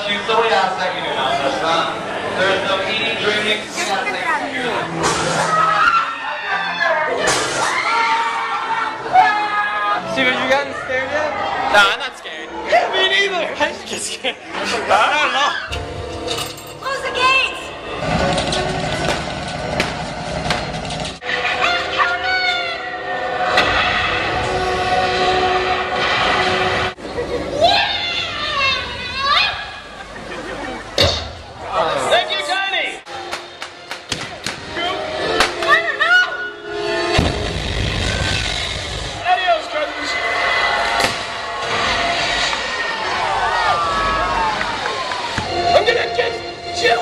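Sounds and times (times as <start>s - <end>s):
machinery: 17.9s - 21.2s
sharp bang: 37.1s - 38.4s
pyrotechnic blast: 37.2s - 39.2s
sudden crack: 40.9s - 42.8s.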